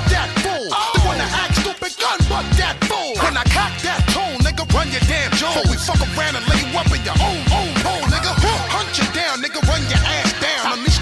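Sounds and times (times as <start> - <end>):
deep bass beat: 0.0 - 11.0
rapping over a beat: 0.0 - 11.0.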